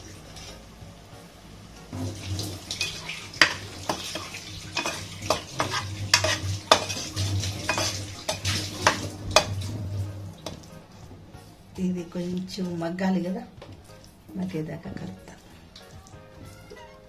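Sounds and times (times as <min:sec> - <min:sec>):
light sizzle: 0:00.0 - 0:17.0
spoon scraping a metal pot: 0:02.7 - 0:09.7.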